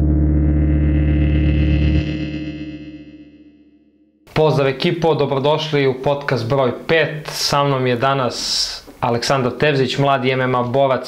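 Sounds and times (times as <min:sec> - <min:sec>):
synthesized deep drone: 0:00.0 - 0:04.2.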